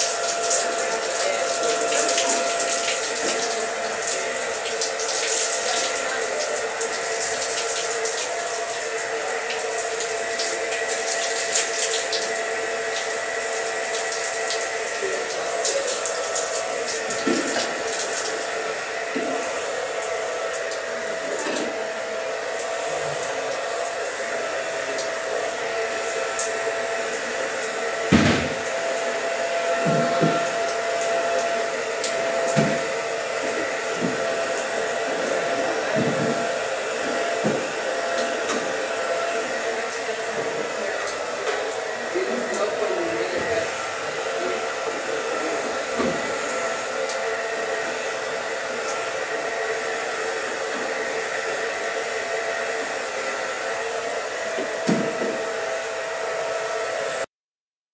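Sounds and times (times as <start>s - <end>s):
electric blower motor whirring: 0.0s - 57.3s.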